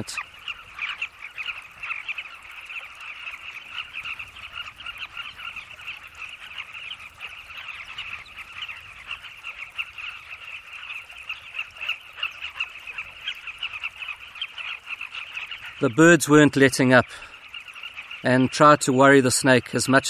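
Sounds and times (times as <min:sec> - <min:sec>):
birds squawking in a colony: 0:00.0 - 0:20.0.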